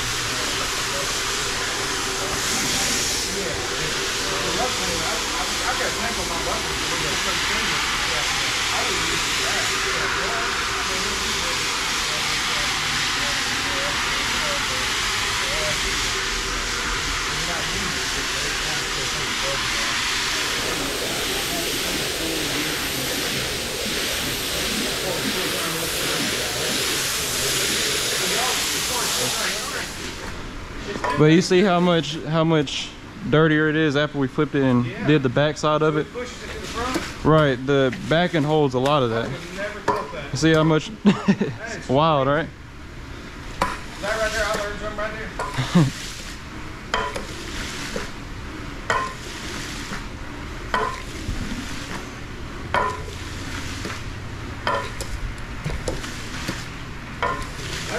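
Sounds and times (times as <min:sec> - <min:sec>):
brushing hiss: 0:00.0 - 0:30.2, 0:43.6 - 0:46.4
floor machine motor drone: 0:00.0 - 0:30.5
water jet spraying: 0:00.0 - 0:32.5, 0:35.1 - 0:42.2, 0:43.4 - 0:57.9.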